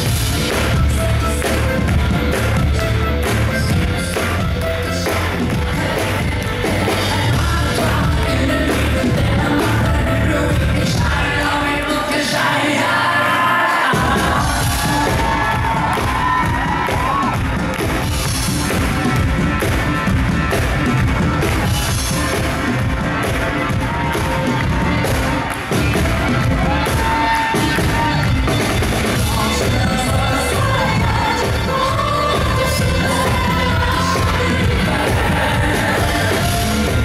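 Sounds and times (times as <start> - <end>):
live pop band: 0.0 - 37.0
man singing: 29.2 - 31.4.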